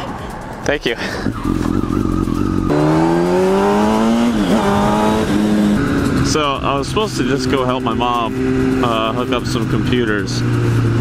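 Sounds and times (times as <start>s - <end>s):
motorcycle engine accelerating: 1.2s - 11.0s.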